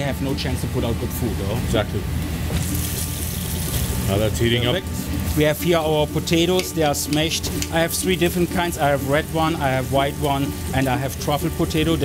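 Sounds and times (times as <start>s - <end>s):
fish sizzling in frying pan: 2.3s - 12.0s.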